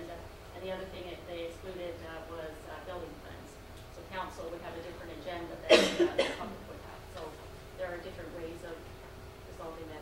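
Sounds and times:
person coughing: 5.7 - 6.6.

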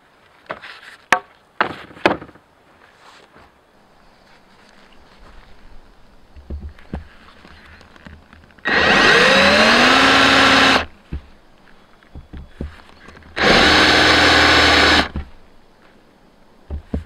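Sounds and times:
power drill boring into plywood: 8.6 - 10.9, 13.3 - 15.3.

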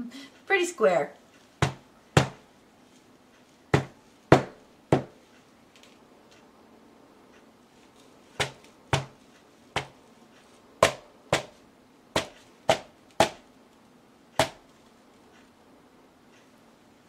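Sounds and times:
rubber mallet striking wet canvas: 1.6 - 2.4, 3.8 - 5.2, 8.4 - 9.2, 9.8 - 10.0, 10.8 - 11.6, 12.2 - 13.4, 14.4 - 14.6.

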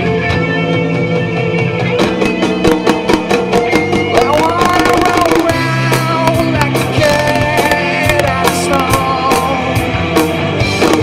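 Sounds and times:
drums beating: 0.0 - 11.0
live rock band playing: 0.0 - 11.0.

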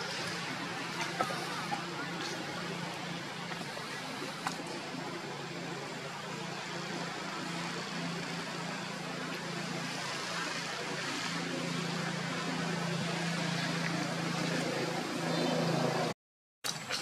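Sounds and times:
constant noisy hiss: 0.0 - 16.1
low motor hum: 0.0 - 17.0.

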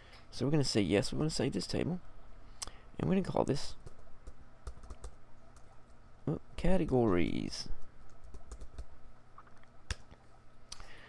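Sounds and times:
computer keyboard typing: 3.8 - 5.7, 8.1 - 8.9.

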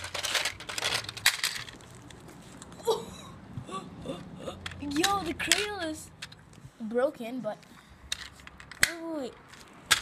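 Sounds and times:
sharp plastic clicks: 8.1 - 10.0.

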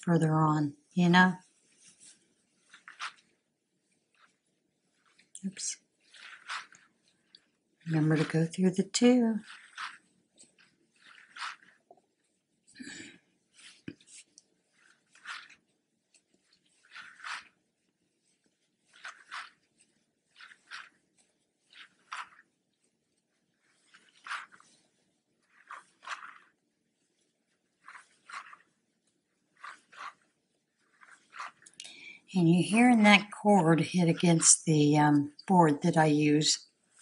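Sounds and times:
cord brushing and tapping on board: 1.0 - 37.0.

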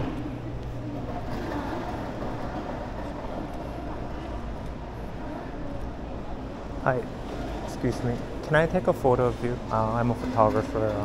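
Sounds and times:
low constant hum: 0.0 - 11.0
shopping mall ambience: 0.0 - 11.0.

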